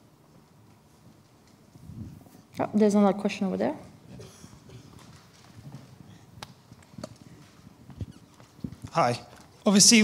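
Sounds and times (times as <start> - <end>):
microphone handling noise: 4.1 - 9.6.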